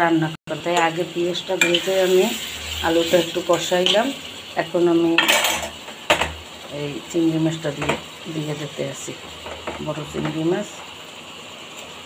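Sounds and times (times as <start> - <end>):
metal utensil scraping a pan: 1.5 - 4.2, 5.2 - 6.3.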